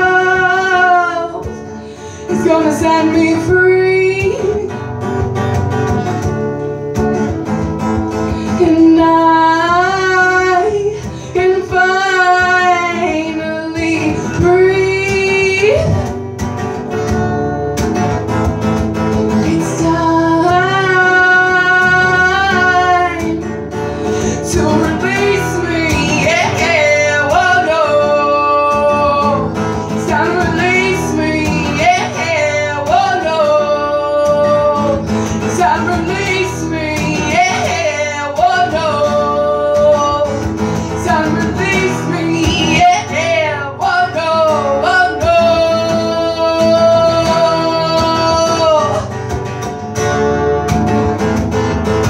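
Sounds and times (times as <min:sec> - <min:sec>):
strummed acoustic guitar: 0:00.0 - 0:52.0.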